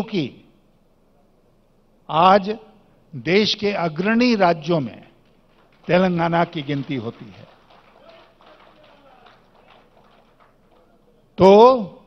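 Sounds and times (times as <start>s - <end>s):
faint scattered hand clapping: 5.2s - 11.2s.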